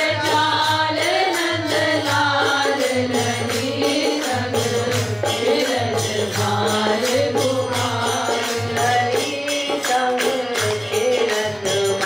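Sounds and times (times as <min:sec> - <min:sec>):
light percussion beat: 0:00.0 - 0:12.0.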